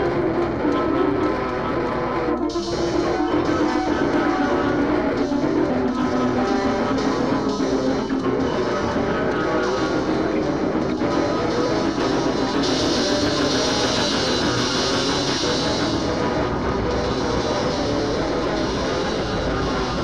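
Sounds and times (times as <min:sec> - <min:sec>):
grunge rock music: 0:00.0 - 0:20.0.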